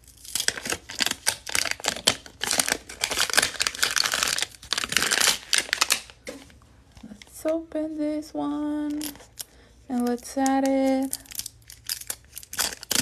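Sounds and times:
plastic wrapper crinkling and tearing: 0.0s - 6.3s, 8.9s - 9.5s, 10.1s - 13.0s.

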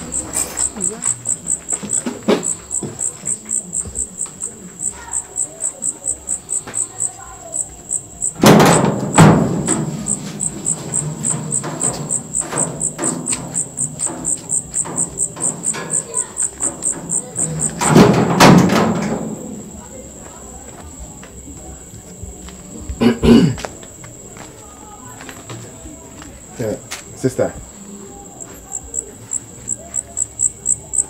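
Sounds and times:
loud thumps: 0.0s - 4.5s, 7.9s - 19.8s
crickets chirping: 0.0s - 31.0s.

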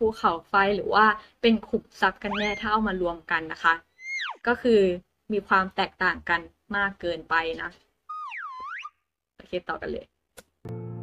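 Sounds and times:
cartoon swooping tone: 2.3s - 2.8s, 4.0s - 4.5s, 8.1s - 9.0s.

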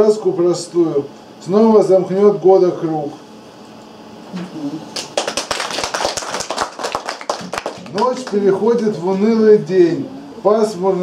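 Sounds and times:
people applauding: 5.0s - 8.6s.

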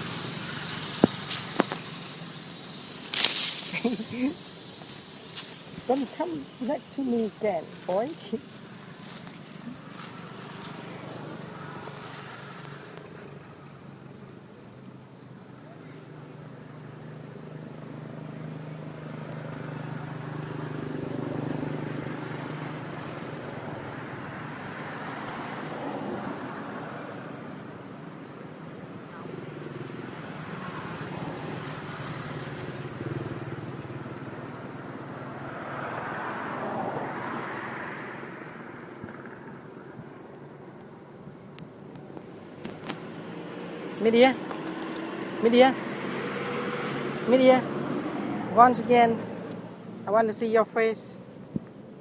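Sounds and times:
low engine hum: 0.0s - 52.0s
vehicles passing by: 0.0s - 52.0s.

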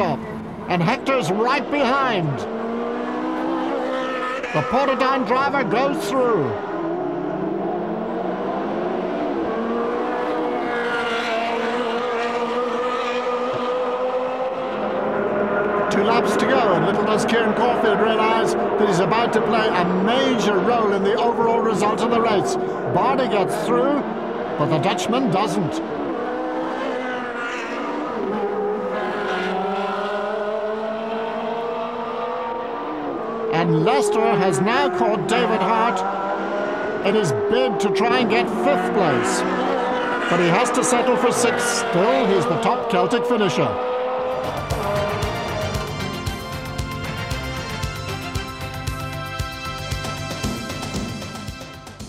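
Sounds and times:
race car passing close: 0.0s - 48.9s
race car engines: 0.0s - 52.0s.

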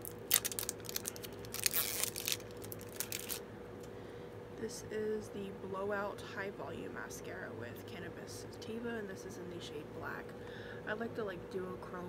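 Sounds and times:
packaging crinkling: 0.0s - 3.4s.

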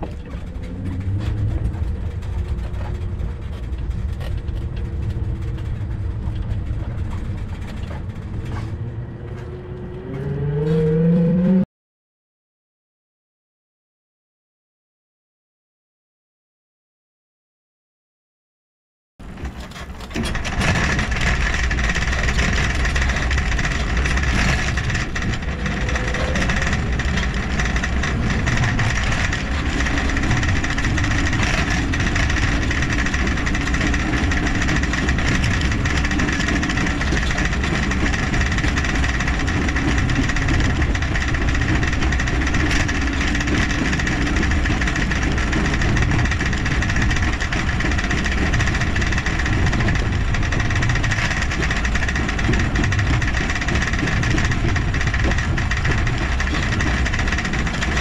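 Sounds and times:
rolling noise: 0.0s - 11.0s, 19.2s - 58.0s
constant hum: 0.0s - 11.6s, 19.2s - 58.0s
rumbling wind: 0.0s - 11.6s, 19.2s - 58.0s.

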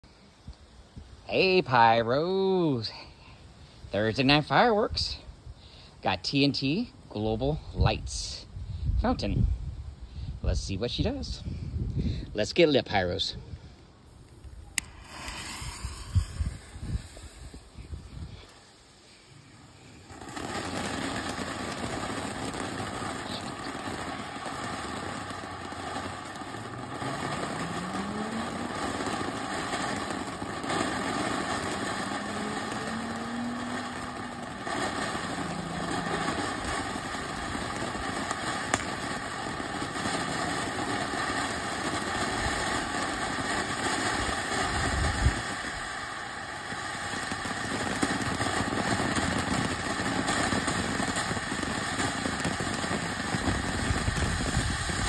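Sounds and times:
firework fountain hissing: 13.8s - 55.0s.

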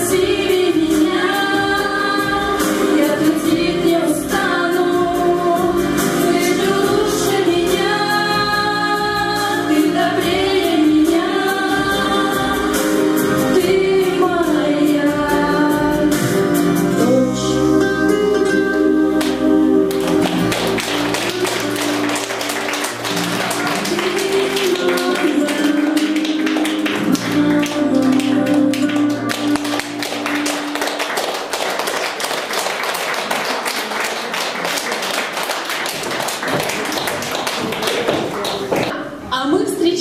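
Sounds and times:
women singing with music: 0.0s - 31.2s
audience clapping: 19.2s - 39.0s.

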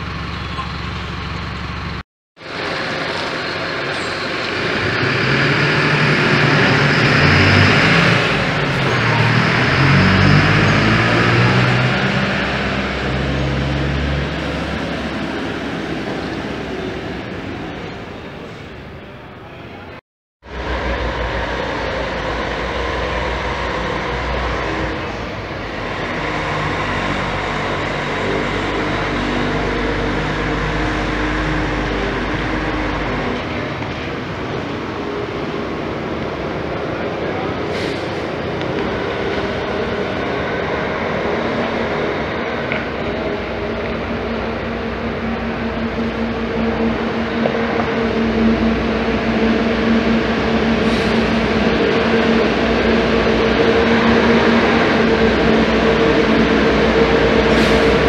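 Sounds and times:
coach diesel engine running: 0.0s - 58.0s.

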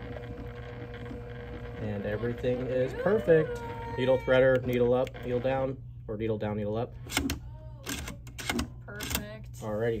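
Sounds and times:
sewing machine humming: 0.0s - 5.8s.

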